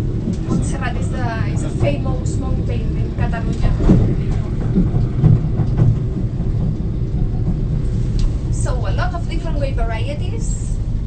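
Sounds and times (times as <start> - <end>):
vehicle driving rumble: 0.0 - 11.0.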